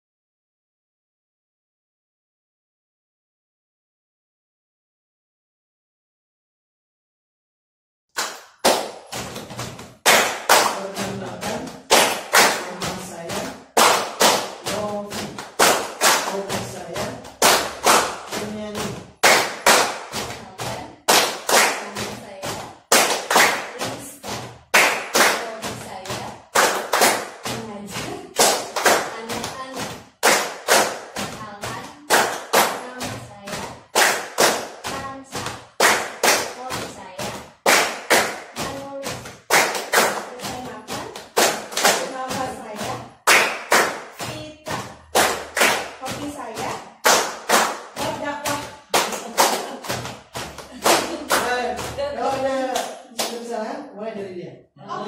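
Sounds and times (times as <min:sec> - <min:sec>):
people clapping in rhythm: 0:08.2 - 0:53.6, 0:54.8 - 0:55.0
voices singing or chanting: 0:10.1 - 0:37.4, 0:38.6 - 0:53.7, 0:54.7 - 0:55.0.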